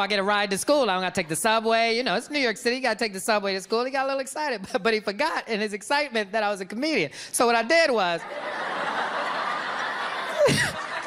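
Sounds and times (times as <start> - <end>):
audience laughing: 8.2 - 11.0
short loud laugh near microphone: 10.1 - 11.0.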